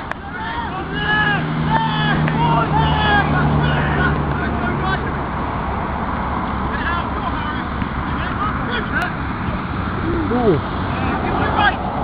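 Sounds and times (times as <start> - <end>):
people shouting calls: 0.2 - 5.0, 10.0 - 11.8
low engine hum: 0.2 - 12.0.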